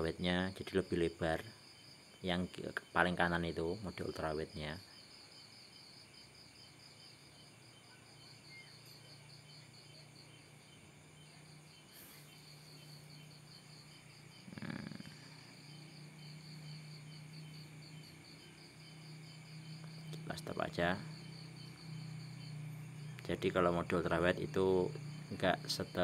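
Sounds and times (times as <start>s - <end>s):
crickets chirping: 0.0s - 26.0s
faint low hum: 0.0s - 26.0s.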